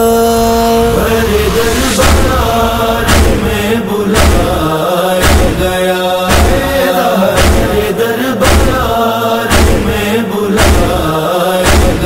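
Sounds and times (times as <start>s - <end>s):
chest-beating thumps: 1.4s - 8.9s, 9.5s - 10.0s, 10.6s - 12.0s.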